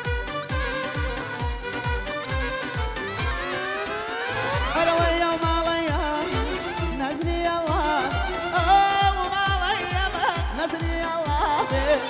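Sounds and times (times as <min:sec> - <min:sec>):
live band music: 0:00.0 - 0:12.0
steady drumbeat: 0:00.0 - 0:12.0
melody sliding upward: 0:01.6 - 0:05.7.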